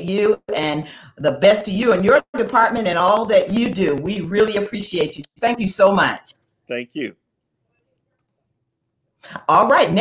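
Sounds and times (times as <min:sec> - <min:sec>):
person speaking: 0:05.8 - 0:07.2.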